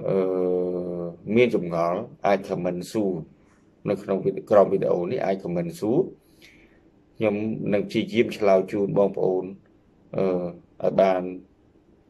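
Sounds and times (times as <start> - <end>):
man speaking: 0.0 - 6.2, 7.2 - 11.5.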